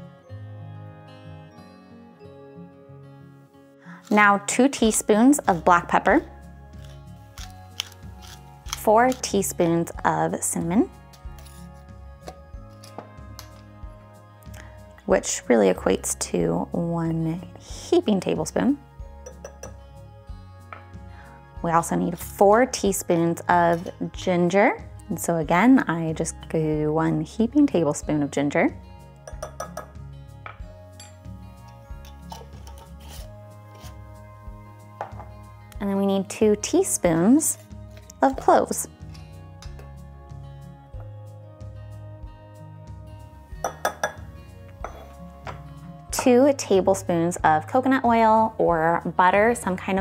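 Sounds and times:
soft background music: 0:00.0 - 0:50.0
spoon clinking against glass: 0:19.2 - 0:19.8, 0:29.2 - 0:33.0, 0:43.6 - 0:46.3
glass jar lid clicks: 0:19.3 - 0:19.8, 0:29.3 - 0:31.2, 0:32.0 - 0:32.9, 0:43.6 - 0:46.3.

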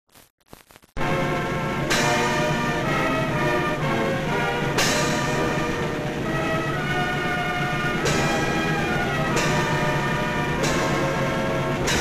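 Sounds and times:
sharp crashes: 0:00.1 - 0:06.9
military band playing: 0:01.0 - 0:12.0.

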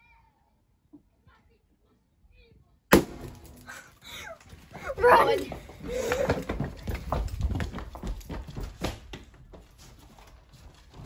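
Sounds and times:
children running footsteps: 0:04.0 - 0:11.0.

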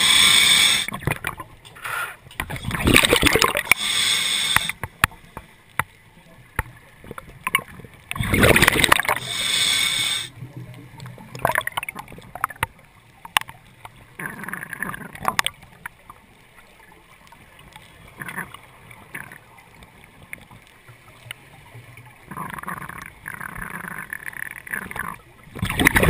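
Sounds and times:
scuba regulator breathing: 0:00.0 - 0:01.0, 0:01.8 - 0:02.8, 0:03.4 - 0:04.8, 0:08.4 - 0:10.4
exhaled bubbles rushing: 0:02.5 - 0:03.8, 0:08.1 - 0:09.3, 0:11.2 - 0:12.5, 0:25.5 - 0:26.0
sharp clicks: 0:04.4 - 0:05.9.

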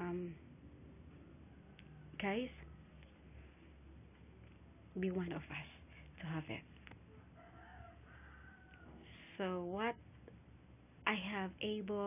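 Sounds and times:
low room hum: 0:00.0 - 0:12.0
distant rooster crowing: 0:01.1 - 0:03.0, 0:07.1 - 0:09.2.

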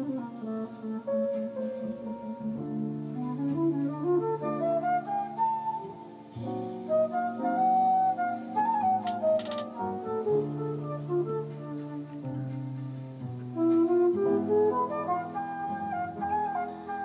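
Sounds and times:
alto flute melody: 0:00.0 - 0:17.0.

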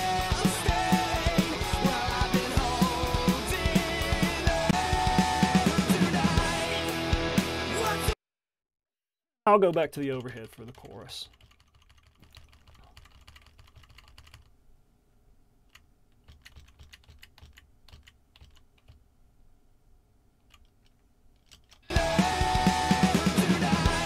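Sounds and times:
rock drum kit with guitar: 0:00.0 - 0:08.1, 0:21.9 - 0:24.0
computer keyboard and mouse clicks: 0:09.7 - 0:14.5, 0:15.7 - 0:19.0, 0:20.5 - 0:21.8.

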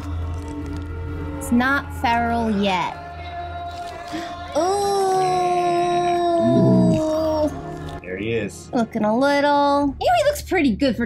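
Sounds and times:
person yodeling: 0:04.6 - 0:07.5.

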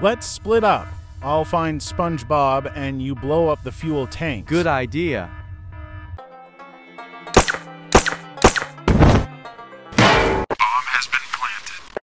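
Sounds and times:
background music: 0:00.0 - 0:10.6
pistol shots: 0:07.4 - 0:08.8.

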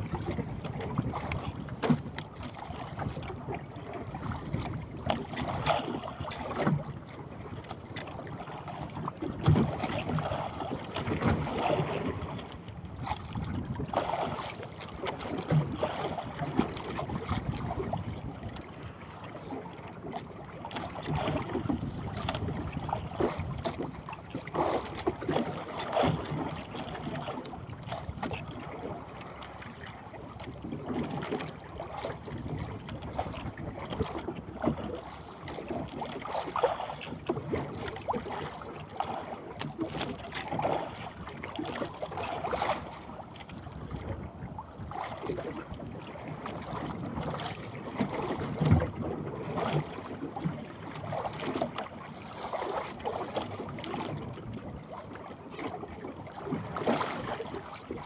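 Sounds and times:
choppy sea water: 0:00.0 - 0:58.0
wind buffeting microphone: 0:09.4 - 0:14.4.

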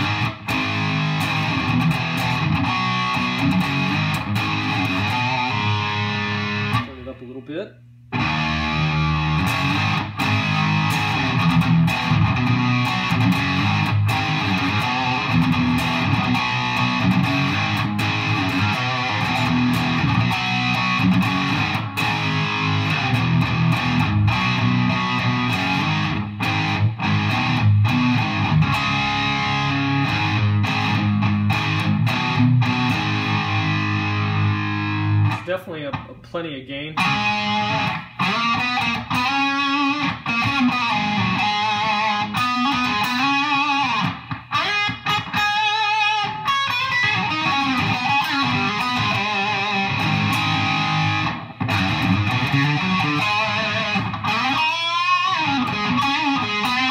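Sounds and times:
distorted electric guitar: 0:00.0 - 0:56.9.

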